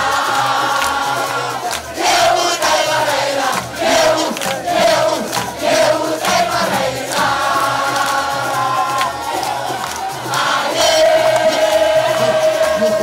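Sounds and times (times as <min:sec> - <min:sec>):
crowd chanting and singing: 0:00.0 - 0:13.0
drum beats: 0:00.0 - 0:13.0.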